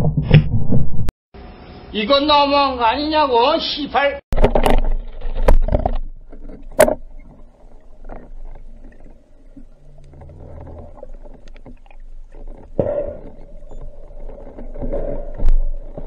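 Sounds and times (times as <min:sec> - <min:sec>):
muffled underwater rushing: 0:04.5 - 0:16.0.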